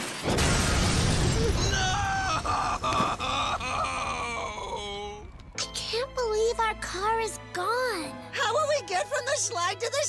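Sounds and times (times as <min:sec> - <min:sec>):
man wailing: 0:01.5 - 0:05.3.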